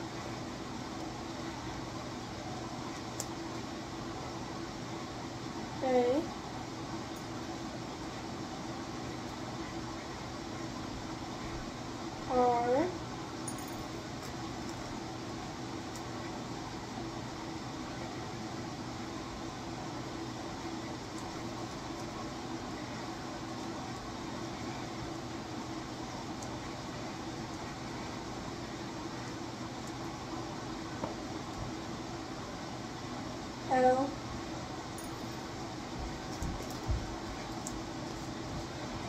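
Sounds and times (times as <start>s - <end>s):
low hum and hiss of room noise: 0.0s - 39.0s.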